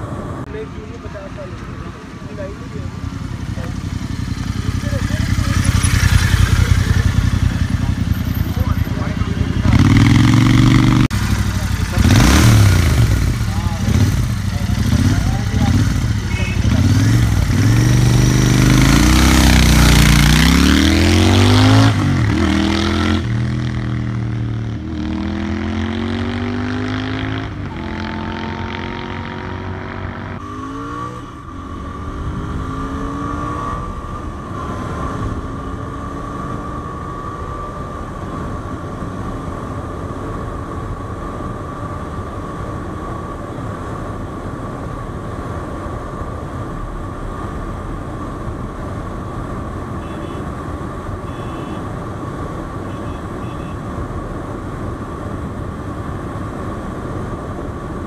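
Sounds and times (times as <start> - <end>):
motorcycle engine accelerating: 2.7 - 39.6.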